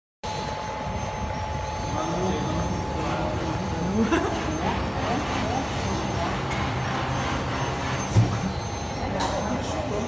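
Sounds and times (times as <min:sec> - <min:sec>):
machinery rumbling: 0:00.2 - 0:10.0
thin steady whine: 0:00.2 - 0:10.0.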